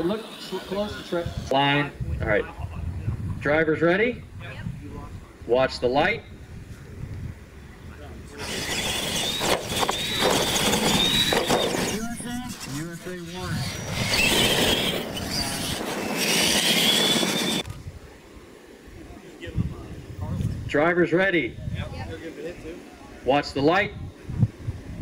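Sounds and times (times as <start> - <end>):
electric motors whining: 0.0 - 1.6, 8.3 - 17.8
tyres on dirt: 8.3 - 17.8.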